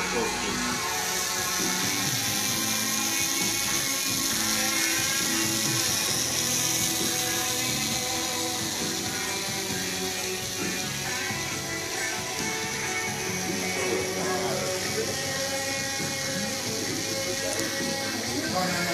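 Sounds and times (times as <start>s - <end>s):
background music: 0.0s - 18.9s
tattoo machine buzzing: 0.0s - 18.9s.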